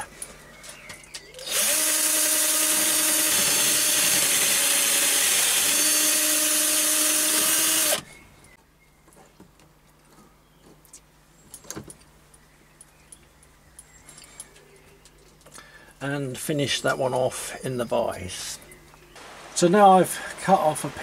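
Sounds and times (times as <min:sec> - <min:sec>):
metal lathe drilling whine: 0:01.5 - 0:08.0.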